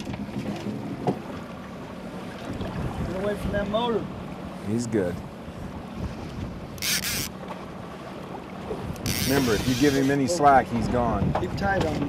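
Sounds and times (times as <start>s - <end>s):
choppy water: 0.0s - 12.0s
outboard motor humming: 0.0s - 12.0s
wind noise on microphone: 8.8s - 10.2s, 10.8s - 12.0s.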